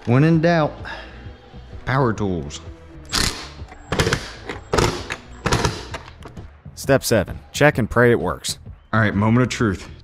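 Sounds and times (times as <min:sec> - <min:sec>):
impact driver bursts: 0:03.1 - 0:06.0.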